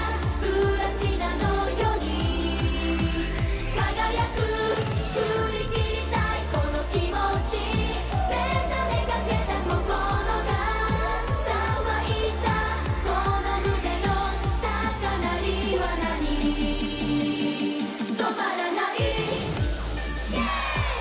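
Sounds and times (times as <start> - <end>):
backing track with kick-drum beat: 0.0 - 21.0
group singing pop song: 0.0 - 21.0.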